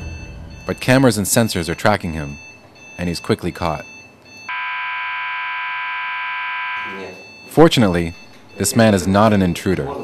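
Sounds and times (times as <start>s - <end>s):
alarm buzzer steady tone: 3.8s - 9.9s.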